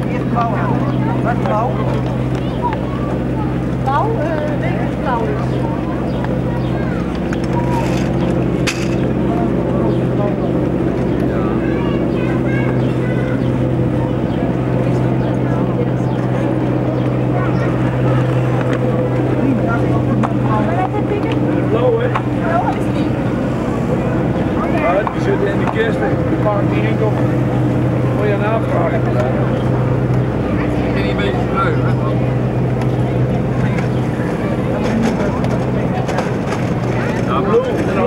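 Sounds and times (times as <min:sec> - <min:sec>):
indistinct voices: 0:00.0 - 0:38.0
steady low hum: 0:00.0 - 0:38.0.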